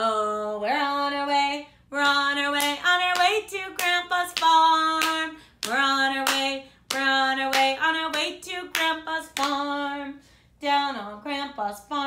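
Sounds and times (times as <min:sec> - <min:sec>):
woman singing: 0:00.0 - 0:12.0
hands clapping: 0:02.0 - 0:09.7.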